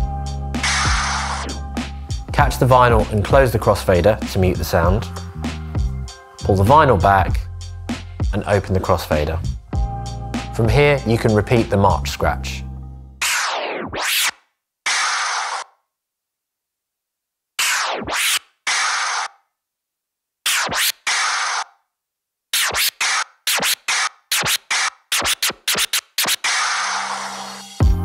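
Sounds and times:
vinyl scratching: 0.6 - 5.6, 13.2 - 15.8, 17.6 - 19.4, 20.4 - 21.8, 22.5 - 27.8.

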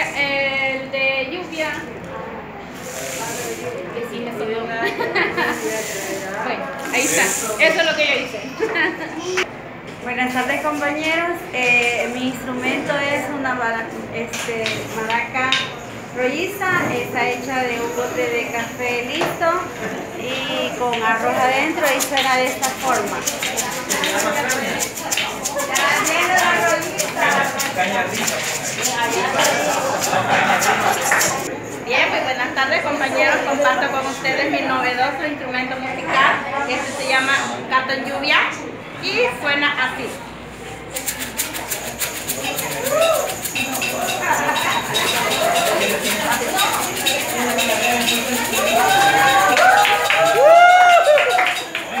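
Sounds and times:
rice shaker rattling: 21.0 - 31.5, 40.9 - 52.0.

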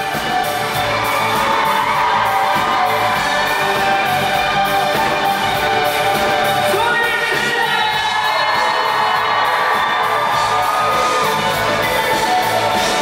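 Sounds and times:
drums: 0.0 - 13.0.

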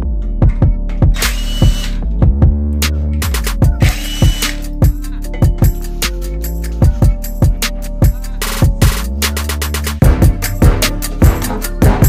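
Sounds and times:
electronic music with beat: 0.0 - 12.0
impact wrench running: 3.8 - 4.6.

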